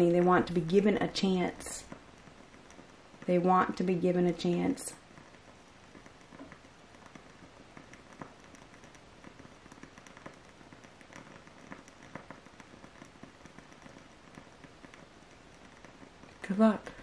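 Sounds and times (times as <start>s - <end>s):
low background noise: 0.0s - 17.0s
small clicks and crackling: 0.0s - 17.0s.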